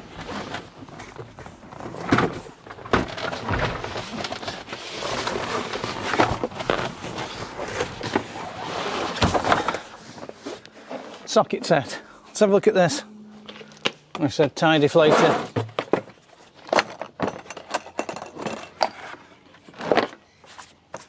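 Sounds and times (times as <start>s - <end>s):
rummaging under car seat: 0.1s - 11.3s.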